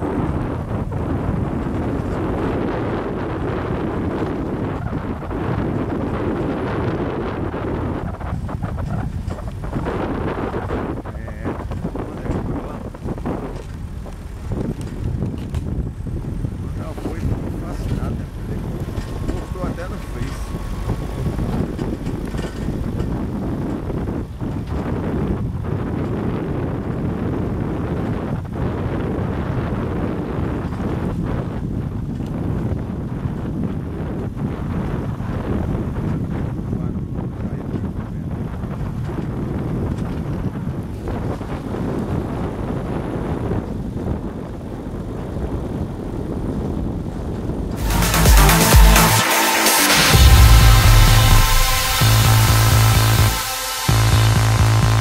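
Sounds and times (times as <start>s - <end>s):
vehicle rumbling on dirt road: 0.0s - 49.2s, 49.8s - 55.0s
wind buffeting microphone: 0.0s - 49.3s, 50.0s - 55.0s.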